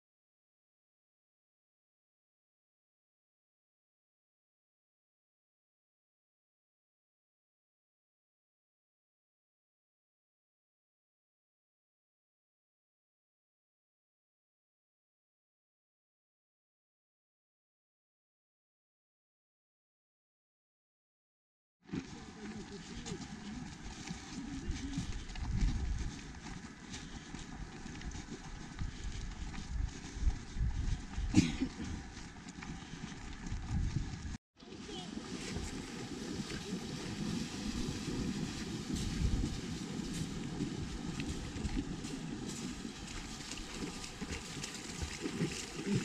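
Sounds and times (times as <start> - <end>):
wind noise on microphone: 23.0 - 46.0.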